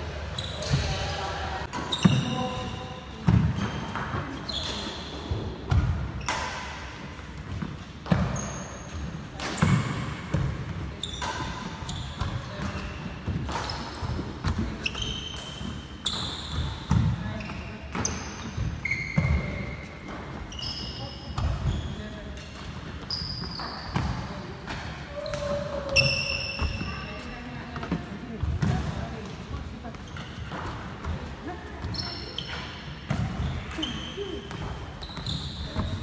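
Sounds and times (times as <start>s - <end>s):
court shoes squeaking: 0.0s - 6.6s, 7.5s - 27.9s, 29.9s - 31.2s, 31.8s - 36.0s.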